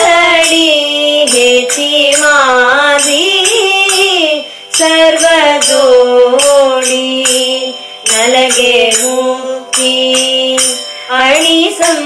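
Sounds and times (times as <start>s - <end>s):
metallic percussion strokes: 0.0s - 12.0s
woman singing slow melody: 0.0s - 12.0s.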